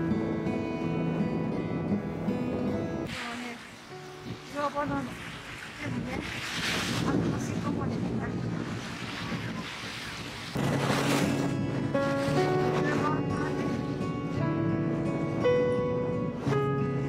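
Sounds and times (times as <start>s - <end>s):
background music: 0.0s - 6.2s, 10.6s - 17.0s
waves washing against rocks: 3.1s - 14.0s
wind buffeting microphone: 4.2s - 17.0s.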